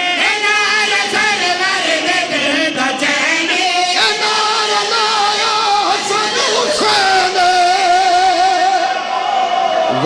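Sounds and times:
man singing long note with vibrato: 0:00.0 - 0:09.1.

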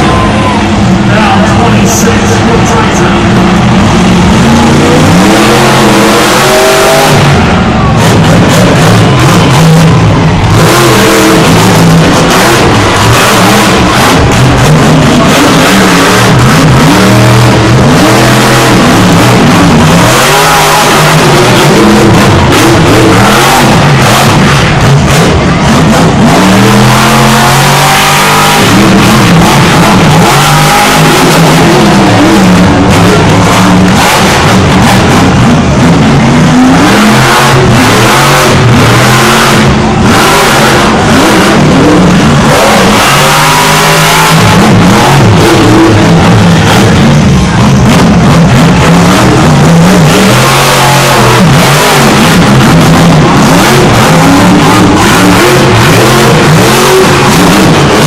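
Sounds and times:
monster truck engine revving: 0:00.0 - 0:58.0.

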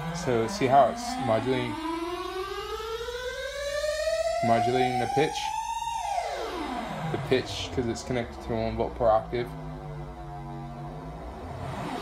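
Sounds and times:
synthesizer tone gliding upward: 0:00.0 - 0:12.0.

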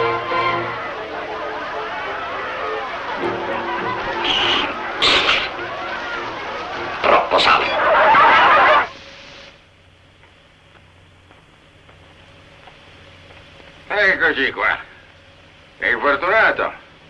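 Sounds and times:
film music: 0:00.0 - 0:09.4
unclear voices: 0:00.0 - 0:09.5
loud noise bursts: 0:00.0 - 0:09.6.

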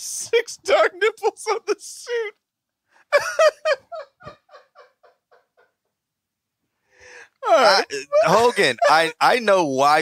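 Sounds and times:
person laughing breathily: 0:07.0 - 0:09.1.

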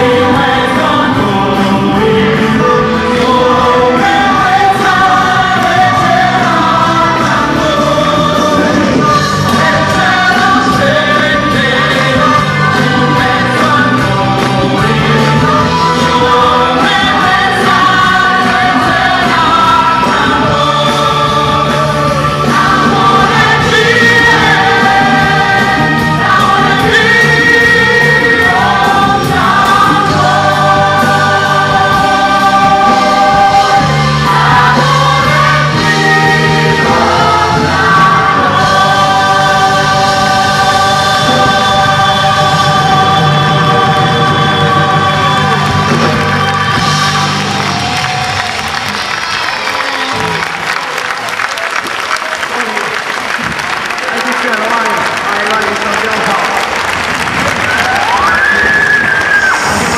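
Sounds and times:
choir singing with band: 0:00.0 - 0:51.3, 0:56.6 - 0:59.9
applause: 0:47.0 - 0:59.9.

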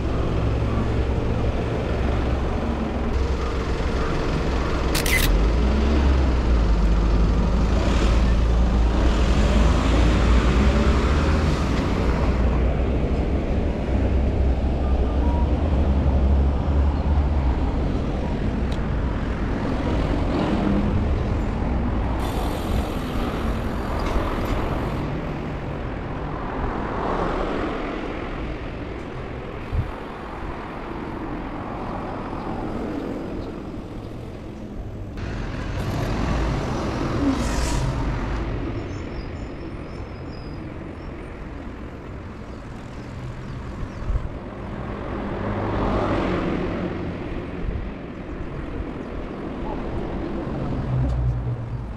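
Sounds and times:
background traffic rumble: 0:00.0 - 0:51.9
cars passing: 0:00.0 - 0:51.9.

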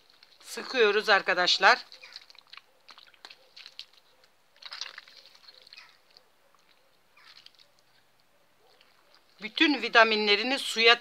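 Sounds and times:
wet squelching and crackling: 0:00.0 - 0:11.0.

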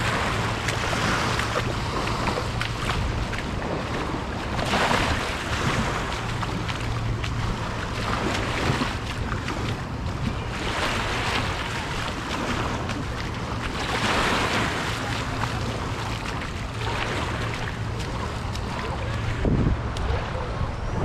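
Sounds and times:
low steady hum: 0:00.0 - 0:21.0
small waves washing onto shore: 0:00.0 - 0:21.0.

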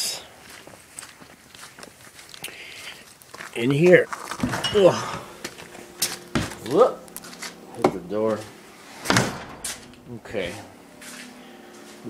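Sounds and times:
footsteps walking: 0:00.3 - 0:12.0.

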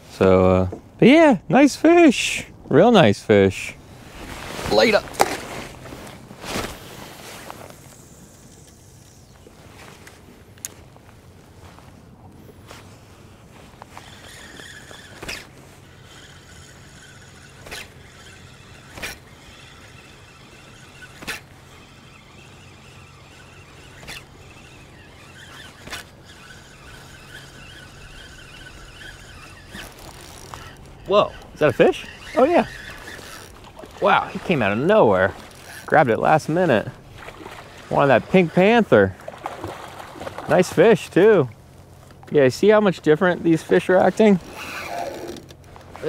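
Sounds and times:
fishing reel gear whirr: 0:06.8 - 0:11.0, 0:12.5 - 0:46.0.

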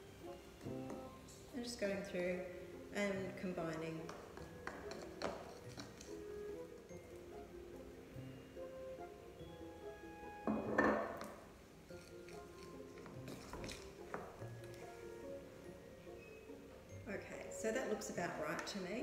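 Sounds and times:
plucked background music: 0:00.0 - 0:19.0.

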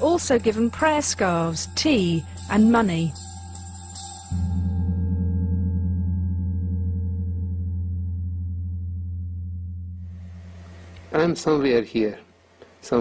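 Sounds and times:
low musical drone: 0:00.0 - 0:11.8.

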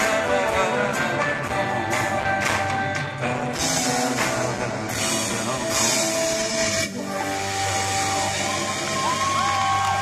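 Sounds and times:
crowd: 0:00.0 - 0:10.0.

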